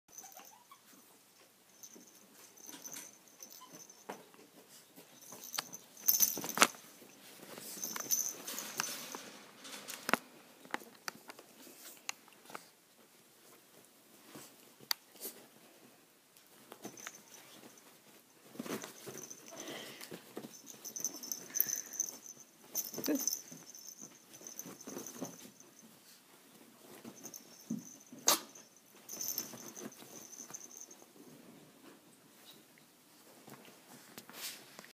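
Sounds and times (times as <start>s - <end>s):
animals scuffling on bedding: 1.8s - 10.2s, 16.4s - 31.1s.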